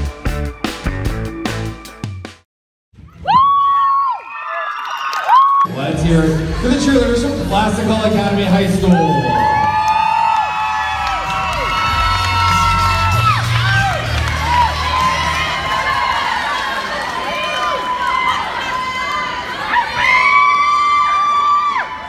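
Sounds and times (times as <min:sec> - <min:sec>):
crowd screaming and cheering: 0:03.0 - 0:22.0.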